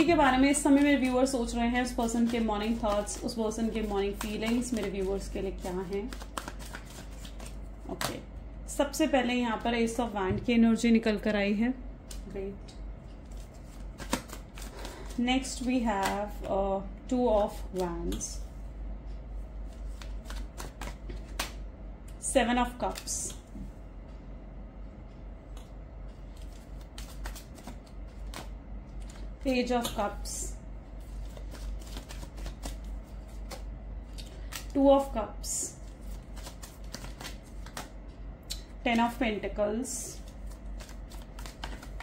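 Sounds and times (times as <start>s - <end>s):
cards being handled: 0.0s - 8.2s, 13.1s - 16.5s, 19.6s - 21.6s, 25.6s - 30.3s, 31.0s - 34.8s, 35.8s - 38.0s, 40.2s - 42.0s.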